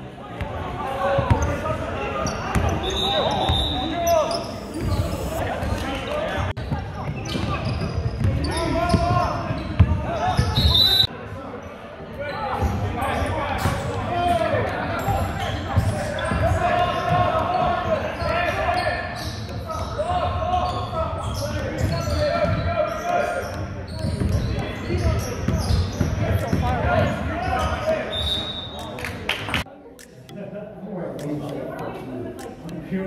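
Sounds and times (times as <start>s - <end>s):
crowd shouting and chattering: 0.0s - 33.0s.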